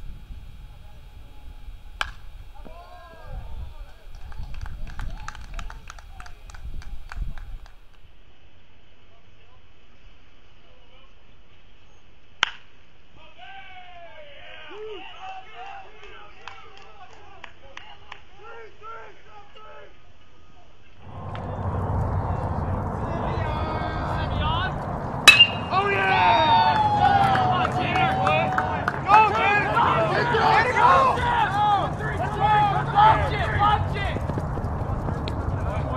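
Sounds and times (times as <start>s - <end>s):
bat hitting ball: 2.0s - 2.8s, 12.4s - 12.6s, 25.2s - 26.0s
low rumble: 21.0s - 27.7s, 29.8s - 35.9s
players calling out: 21.0s - 35.9s.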